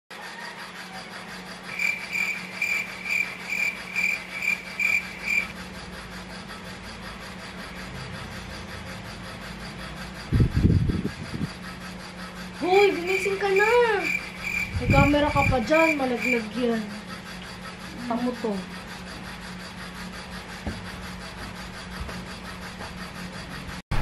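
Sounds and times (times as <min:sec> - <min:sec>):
steady low hum: 0:00.2 - 0:24.0.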